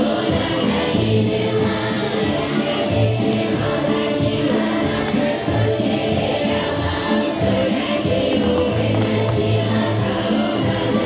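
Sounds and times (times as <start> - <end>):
folk choir singing: 0.0 - 11.0
instrumental accompaniment: 0.0 - 11.0
jingling tambourine beat: 0.0 - 11.0.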